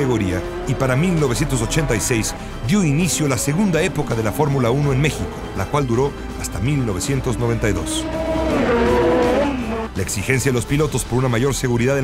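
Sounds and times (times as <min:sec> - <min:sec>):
racing car passing at speed: 0:07.1 - 0:09.9.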